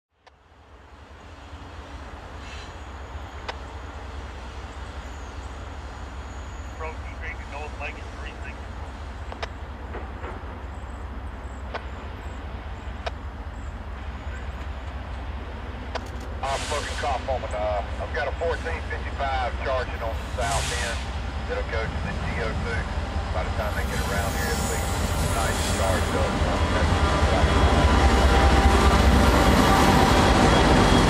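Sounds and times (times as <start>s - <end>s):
distant diesel locomotive rumble: 0.4s - 31.0s.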